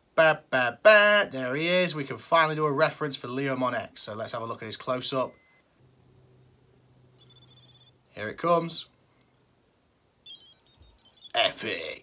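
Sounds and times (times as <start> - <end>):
virtual pet electronic jingle: 7.2 - 8.0, 10.2 - 11.4.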